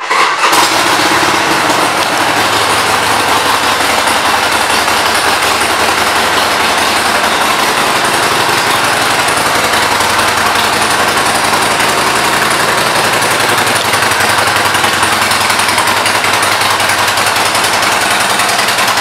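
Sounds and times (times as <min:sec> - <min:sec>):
motorcycle engine idling: 0:00.0 - 0:19.0.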